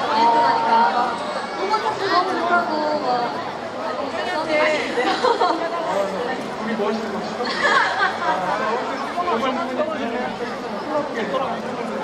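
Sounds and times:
overlapping chatter: 0.0 - 12.0
women talking into microphones: 0.1 - 6.0.

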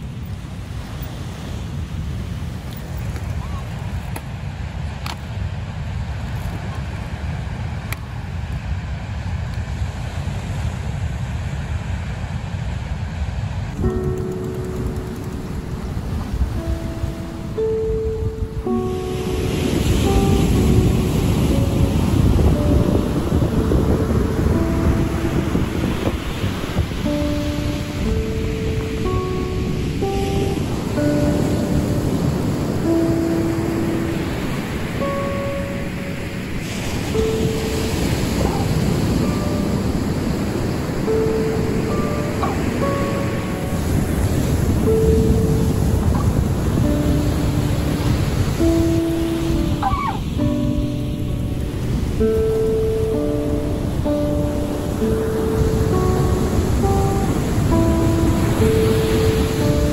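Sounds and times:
ocean surf: 0.0 - 59.9
wind on microphone: 0.0 - 59.9
melodic music with held notes: 13.8 - 59.9.

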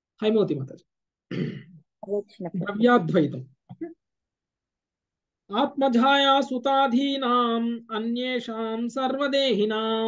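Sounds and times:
man lecturing: 2.4 - 3.6.

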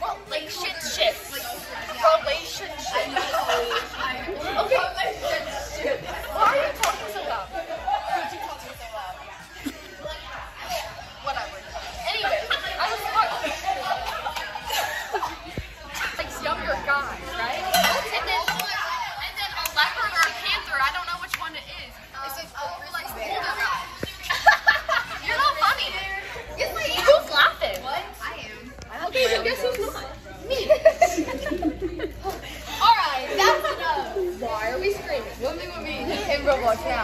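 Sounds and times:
girls chattering: 0.0 - 37.0.

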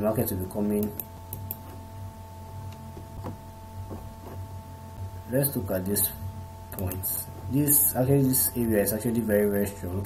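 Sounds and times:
faint whining tones: 0.0 - 10.0
low electrical hum: 0.0 - 10.0.

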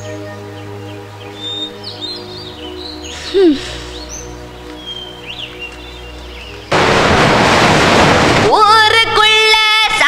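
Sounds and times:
soft background music: 0.0 - 7.1
loud rush of surf: 6.7 - 8.6.

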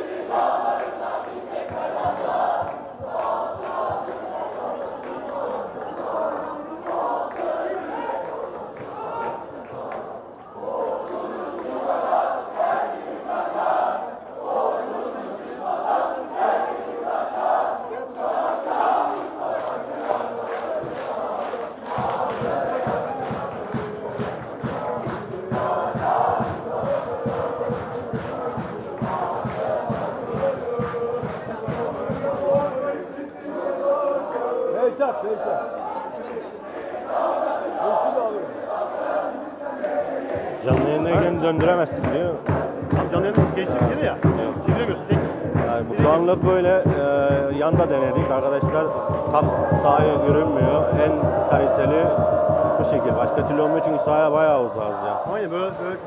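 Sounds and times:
football crowd chanting: 0.0 - 56.0
steady rhythmic beat: 0.1 - 10.2, 18.7 - 33.1, 40.2 - 56.0.

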